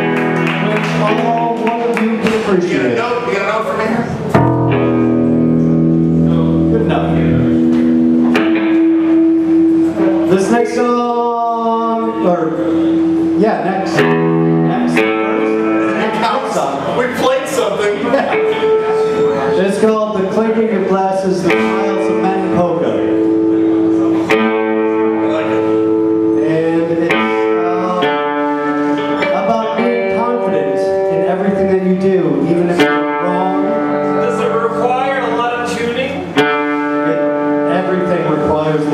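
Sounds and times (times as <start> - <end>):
rock band playing live: 0.0 - 3.0, 4.0 - 38.9
electric guitar chords: 0.0 - 38.9
electric guitar sustained note: 4.3 - 11.0, 11.8 - 16.9
guitar pick click: 7.6 - 9.2
man singing: 26.4 - 28.5.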